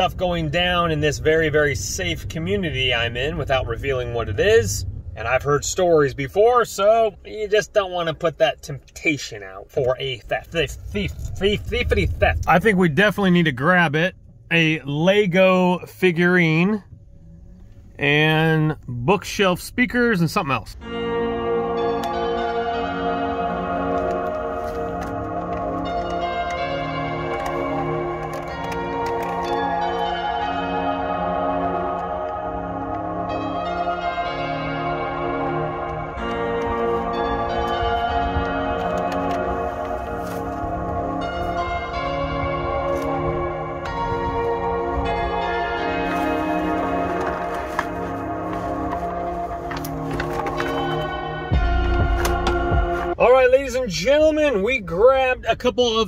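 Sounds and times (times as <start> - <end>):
low rumble: 0.0 - 54.7
bell-like chord ringing: 20.8 - 53.2.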